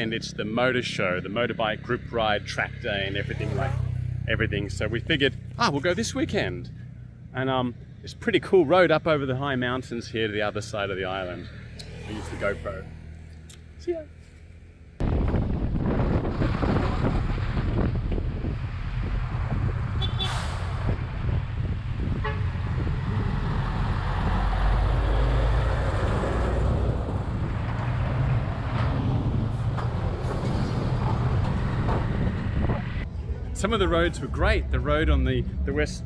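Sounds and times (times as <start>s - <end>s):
heavy trucks passing: 10.3s - 35.8s
wind noise: 15.0s - 33.2s
vehicle horn toot: 20.0s - 20.4s.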